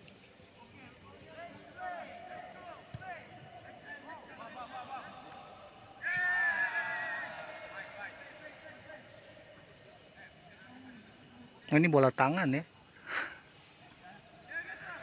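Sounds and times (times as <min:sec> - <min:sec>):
men shouting in stadium: 0:01.8 - 0:09.1
long loud shout: 0:06.0 - 0:07.8.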